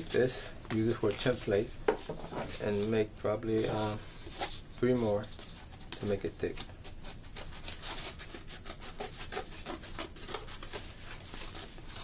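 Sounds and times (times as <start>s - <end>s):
tool rasping across cardboard: 7.8s - 10.8s.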